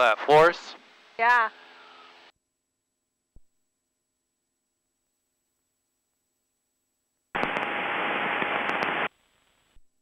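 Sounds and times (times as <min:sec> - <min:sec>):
headset static hiss: 0:00.0 - 0:02.3, 0:03.3 - 0:10.0.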